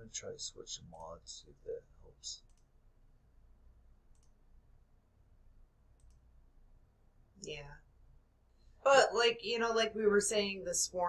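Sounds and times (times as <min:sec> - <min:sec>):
faint computer mouse clicks: 0:02.4 - 0:02.7, 0:04.1 - 0:04.4, 0:06.0 - 0:06.2.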